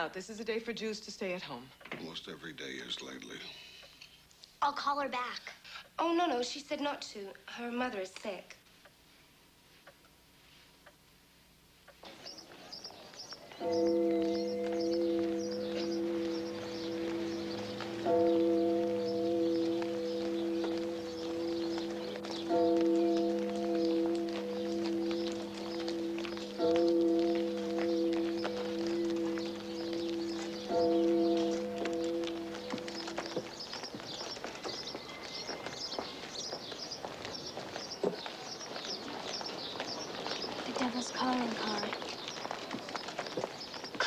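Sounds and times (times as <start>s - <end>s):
large church bell tolling: 13.5s - 36.6s.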